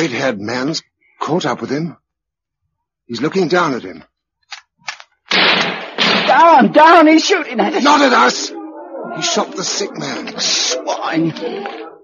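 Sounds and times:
gunshot: 0:05.3 - 0:06.6.

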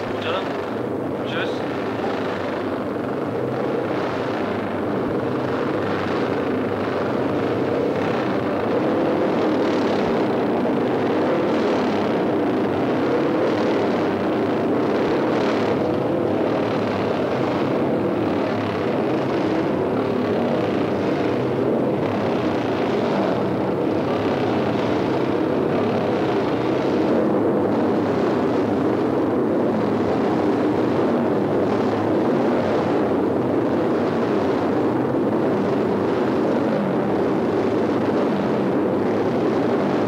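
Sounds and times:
racing motorcycle engines droning: 0:00.0 - 0:40.0.

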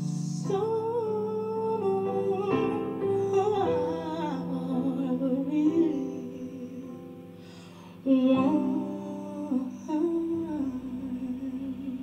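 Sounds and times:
digital piano chords: 0:00.0 - 0:12.0
woman singing wordless melody: 0:00.0 - 0:12.0.

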